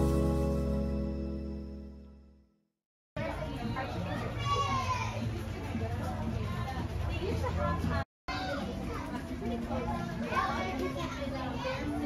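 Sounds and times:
children chattering and calling out: 3.2 - 12.0.

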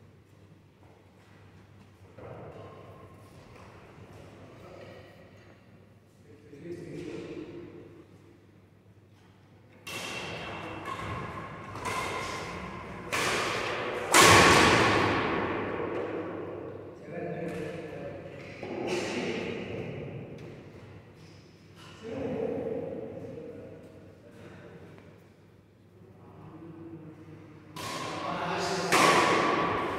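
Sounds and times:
rackets hitting shuttlecock: 9.8 - 16.8, 27.7 - 29.9.

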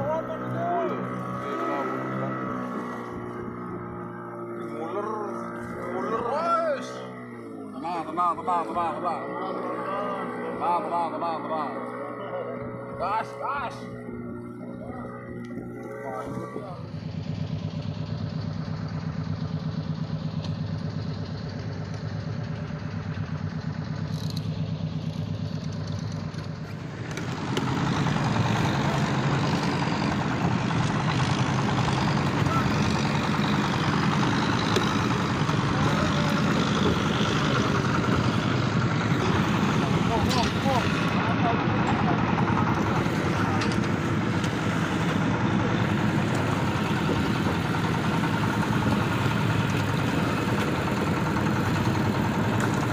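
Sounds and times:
boat engine running: 0.0 - 52.9.

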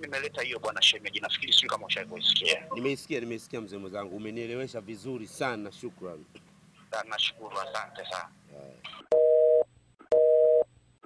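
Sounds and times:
telephone busy signal beeping: 9.2 - 10.7.

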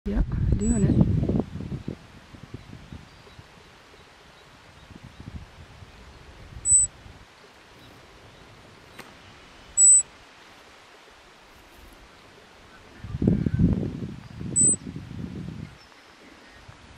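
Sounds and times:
animal high-pitched chirps: 6.6 - 6.9, 9.8 - 10.1, 14.6 - 14.8.

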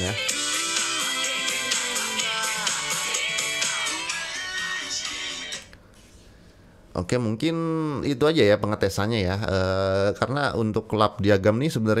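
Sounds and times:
song from phone speaker: 0.0 - 5.8
faint room hiss: 0.0 - 12.0.

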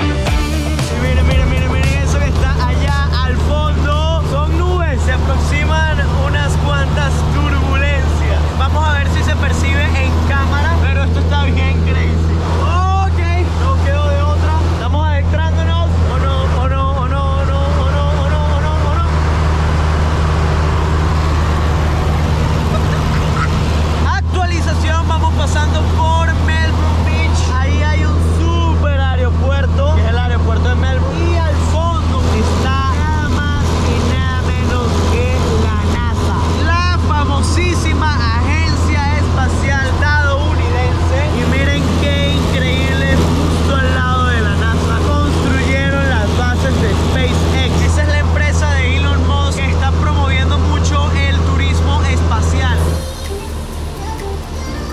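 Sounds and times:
light aircraft engine drone: 0.0 - 54.9
voice-like melodic sound: 52.8 - 54.9.

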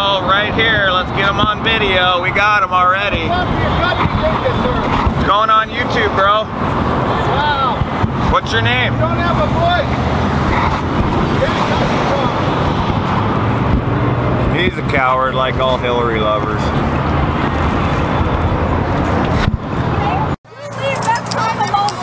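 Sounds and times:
pickup truck engine hum: 0.0 - 22.0
road traffic passing: 0.0 - 22.0
wind buffeting microphone: 0.0 - 22.0.

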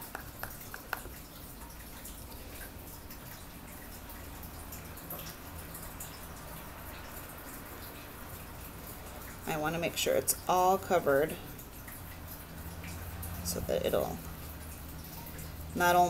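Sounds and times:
faint clicks and drips: 0.0 - 16.0.

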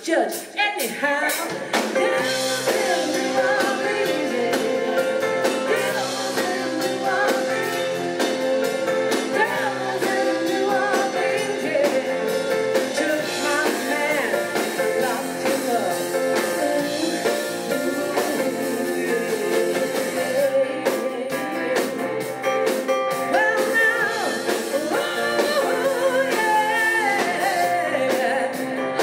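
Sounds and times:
live rock band: 0.0 - 29.0
woman singing lead: 0.0 - 29.0.

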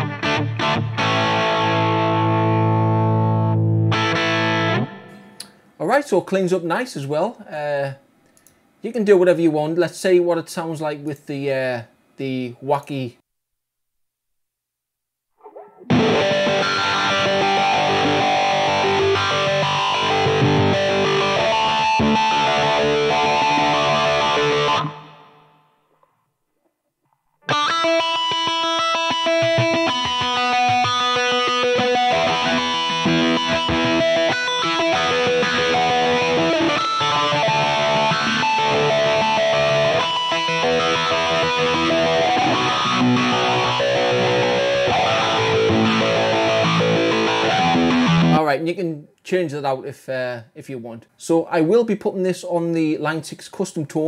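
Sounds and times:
distorted electric guitar riffing: 0.0 - 5.5, 15.4 - 25.6, 27.5 - 48.4.

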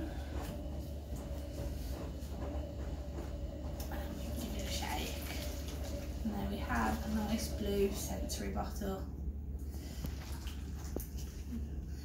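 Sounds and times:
steady low hum: 0.0 - 12.0
water sloshing in bottle: 9.6 - 12.0.

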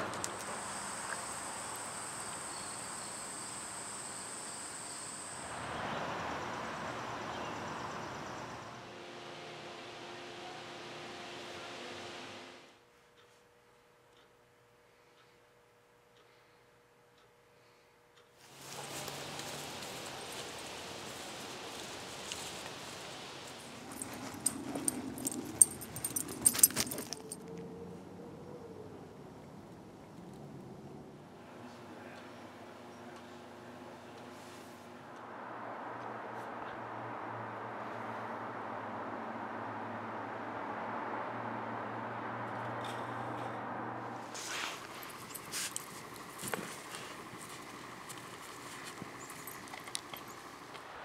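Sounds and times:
insects trilling: 0.2 - 8.8
dog collar tags jingling: 23.6 - 27.5, 45.0 - 46.7, 48.8 - 50.4.

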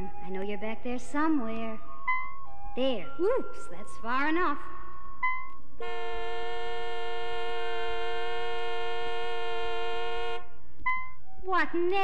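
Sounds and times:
two-tone car horn blast: 5.8 - 10.6.

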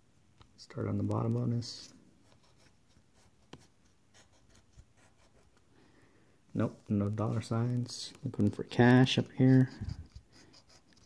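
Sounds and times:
scratching lottery ticket: 7.1 - 11.0.

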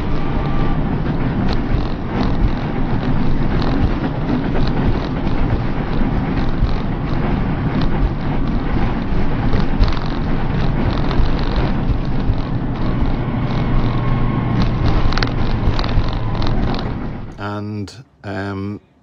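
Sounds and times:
faint ticks and rattles: 0.0 - 17.4
vehicle engine and road noise: 0.0 - 19.0.

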